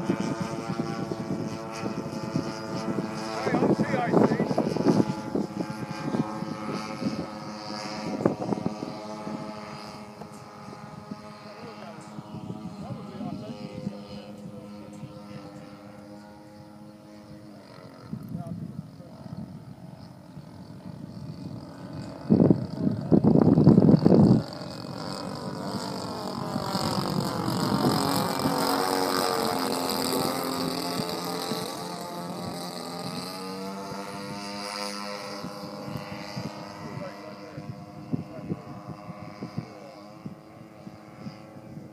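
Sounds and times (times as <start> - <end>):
model airplane engines droning: 0.0 - 41.9.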